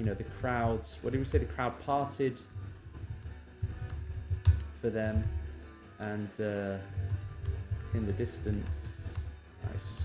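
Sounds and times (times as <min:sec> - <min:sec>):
man speaking: 0:00.0 - 0:02.5, 0:04.8 - 0:05.3, 0:07.9 - 0:10.0.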